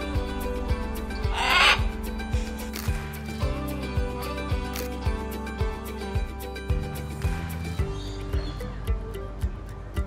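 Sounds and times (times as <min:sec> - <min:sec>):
background music with beat: 0:00.0 - 0:10.0
macaw call: 0:01.2 - 0:01.9.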